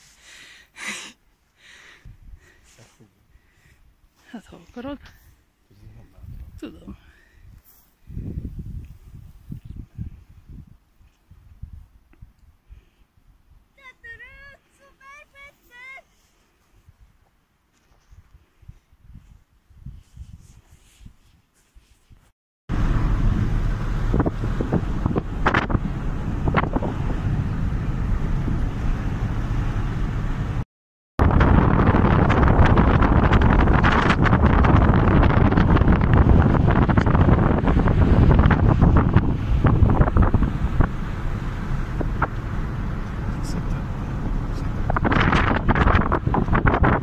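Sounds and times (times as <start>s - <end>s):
wind buffeting microphone: 5.8s - 12.4s, 18.0s - 21.2s, 22.7s - 30.6s, 31.2s - 47.0s.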